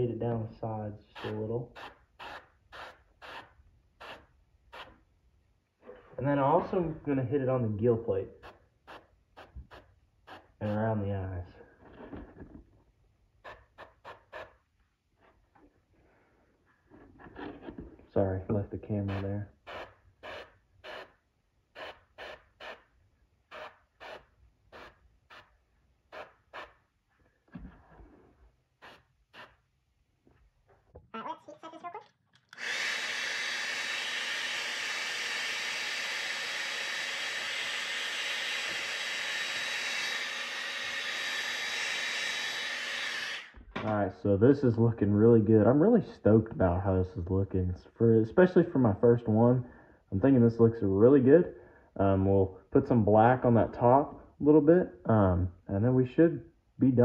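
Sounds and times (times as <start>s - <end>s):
airbrush spraying: 1.2s - 4.9s, 19.1s - 21.2s, 21.8s - 22.9s, 23.5s - 26.8s, 28.8s - 29.6s, 32.6s - 43.5s
airbrush spraying hissing bursts: 32.6s - 43.4s.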